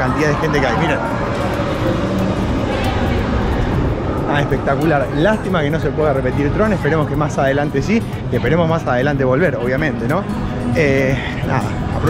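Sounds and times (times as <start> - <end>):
roller coaster train rushing: 0.0 - 8.7.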